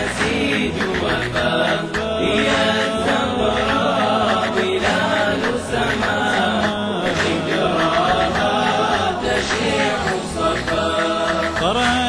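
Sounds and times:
voices singing devotional chant: 0.0s - 12.0s.

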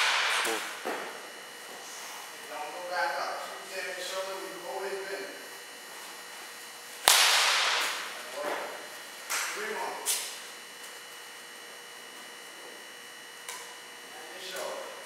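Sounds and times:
baseball bat hitting ball: 0.0s - 0.8s, 7.0s - 8.1s.

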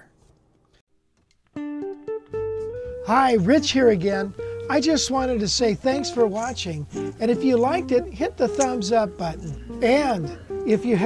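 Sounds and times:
guitar plucked notes: 1.6s - 10.9s.

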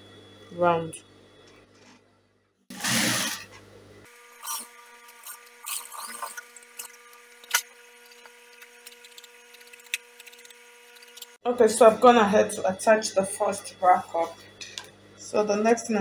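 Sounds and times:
low steady hum: 0.0s - 16.0s
sewing machine stitching: 2.7s - 3.5s.

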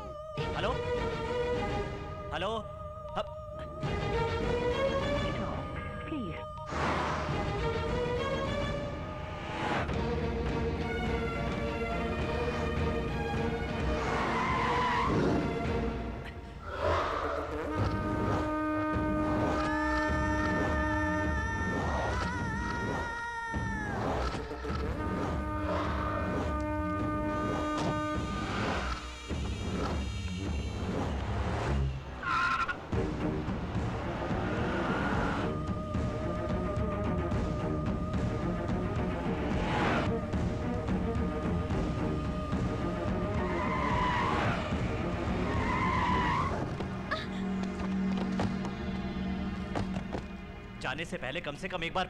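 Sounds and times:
sustained high pitched tone: 2.1s - 3.9s, 5.2s - 6.8s
car tyres squealing on asphalt: 13.8s - 15.6s, 24.8s - 33.0s, 33.7s - 35.6s, 42.6s - 47.0s.

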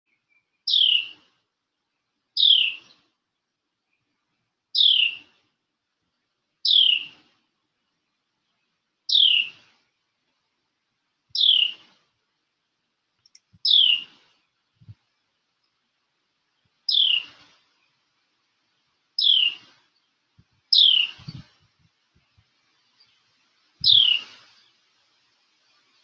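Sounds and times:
songbird calling: 0.1s - 10.2s, 11.3s - 12.1s, 13.2s - 15.0s, 16.5s - 18.1s, 18.8s - 21.6s, 22.2s - 26.0s.

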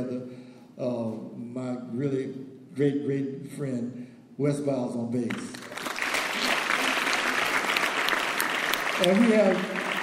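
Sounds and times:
congregation applauding: 5.3s - 10.0s.

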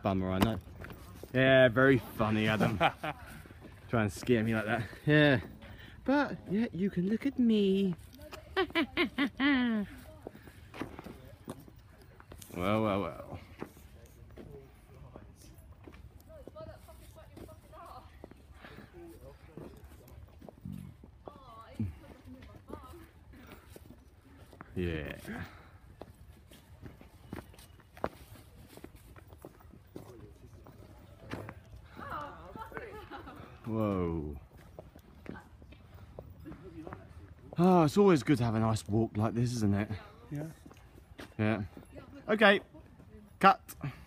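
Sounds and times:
faint footsteps on pavement: 0.0s - 44.0s.

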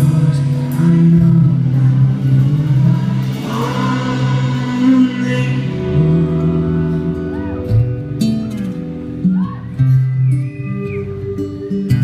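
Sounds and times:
live band playing sustained chords: 0.0s - 12.0s
strummed acoustic guitar: 0.0s - 12.0s.

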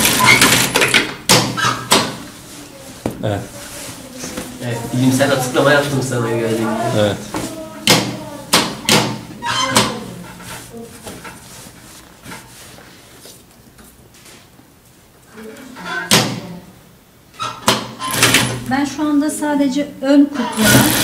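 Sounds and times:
fabric rustling: 2.2s - 7.7s, 10.2s - 15.1s.

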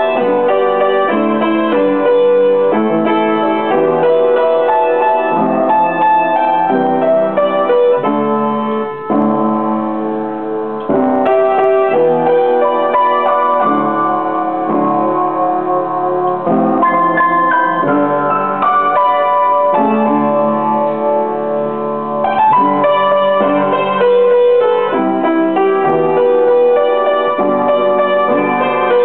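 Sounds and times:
slow piano piece: 0.0s - 29.0s.

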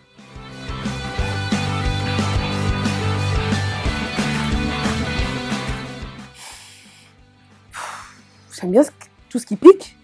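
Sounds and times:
music: 0.0s - 10.0s
breath drawn in: 6.3s - 8.5s.

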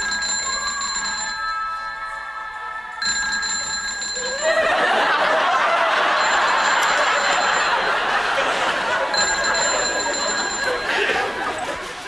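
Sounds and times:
telephone ringing: 0.0s - 11.9s.

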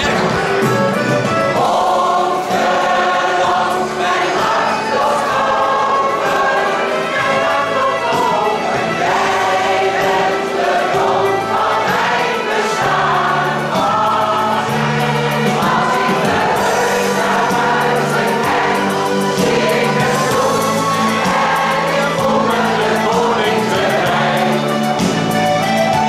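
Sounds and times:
choir singing: 0.0s - 26.0s.

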